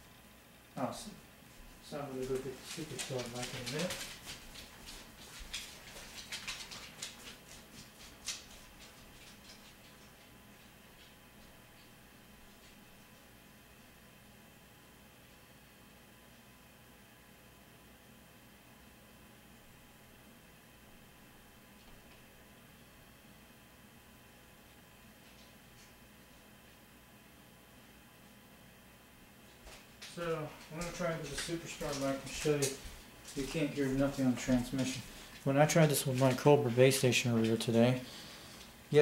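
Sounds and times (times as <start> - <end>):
faint steady hum: 0.0 - 39.0
small clicks and rustles: 2.2 - 13.3, 25.2 - 26.5.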